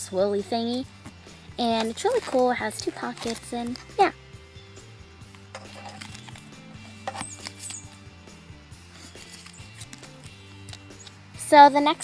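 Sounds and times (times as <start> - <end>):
quiet background music: 0.0 - 12.0
paper folder rustling and tapping: 5.4 - 7.8.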